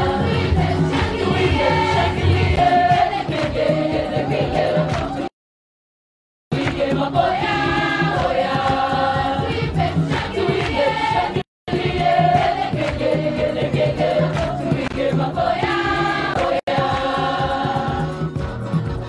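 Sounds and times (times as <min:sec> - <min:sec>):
girls choir singing: 0:00.0 - 0:05.3, 0:06.5 - 0:18.2.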